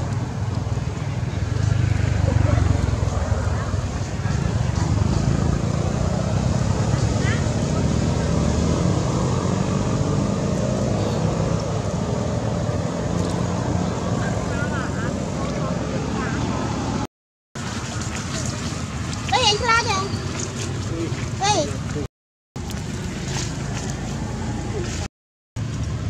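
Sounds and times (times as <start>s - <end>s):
low outdoor rumble: 0.0s - 8.4s.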